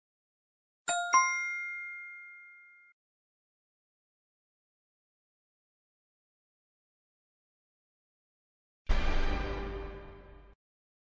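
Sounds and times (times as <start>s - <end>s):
two-tone bell chime: 0.9s - 3.0s.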